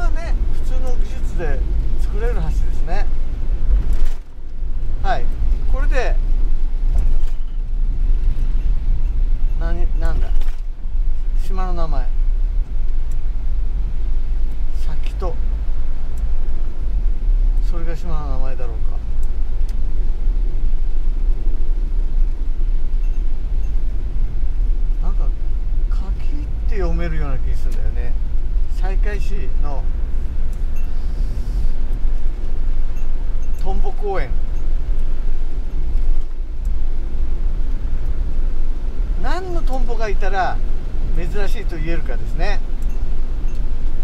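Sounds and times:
engine and tyre rumble: 0.0 - 44.0
tyres hissing on wet road: 30.2 - 32.1.

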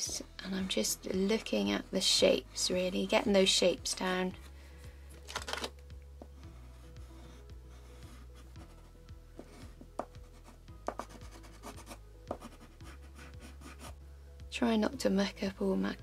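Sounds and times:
crayon scratching on paper: 6.6 - 14.0
crayon tapping paper: 9.4 - 10.2, 10.8 - 12.7.

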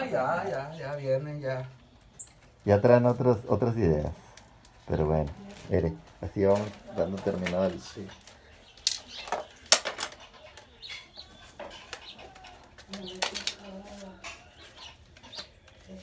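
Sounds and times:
dry cane rustling: 0.0 - 16.0
cane clicks and snaps: 8.8 - 10.7.

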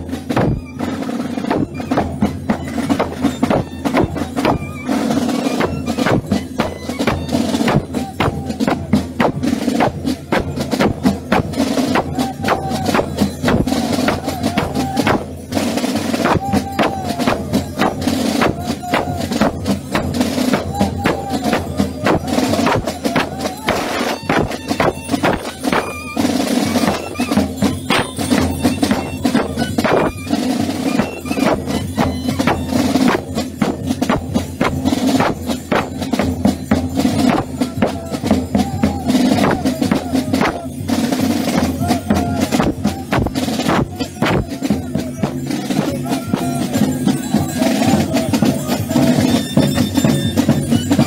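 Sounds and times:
bass drum beaten with sticks: 5.6 - 15.5, 31.4 - 50.9
wavering melody: 11.7 - 51.0.

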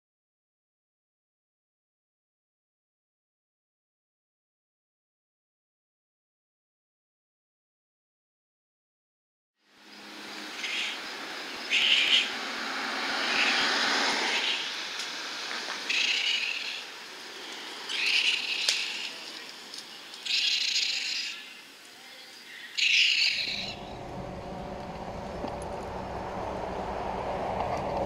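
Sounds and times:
steady outdoor hiss: 9.6 - 28.0
baby raccoon chirping cries: 10.6 - 11.0, 11.7 - 12.3, 15.9 - 16.9, 17.9 - 19.2, 20.2 - 21.6, 22.5 - 23.8.

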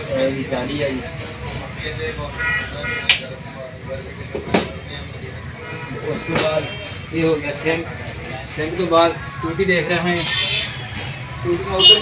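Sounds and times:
busy shop background noise: 0.0 - 12.0
faint indistinct voices: 0.0 - 12.0.

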